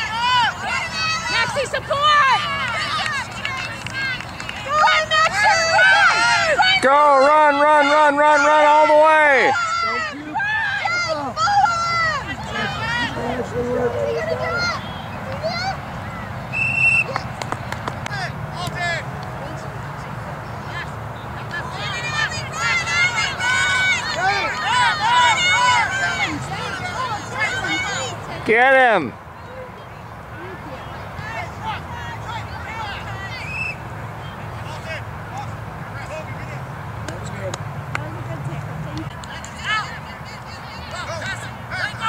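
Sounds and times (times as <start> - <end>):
people shouting: 0.0 - 16.3, 21.4 - 29.7, 30.4 - 33.8
referee whistle trill: 16.5 - 17.2.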